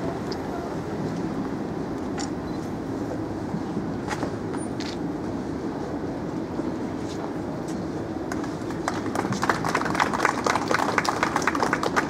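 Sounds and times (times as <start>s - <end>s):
crowd applause: 8.3s - 12.0s.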